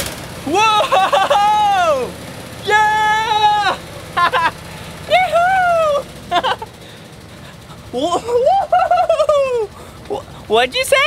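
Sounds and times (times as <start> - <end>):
tractor engine idling: 0.0 - 11.0
man whooping: 0.4 - 6.8, 7.5 - 10.3
man laughing: 0.5 - 10.5.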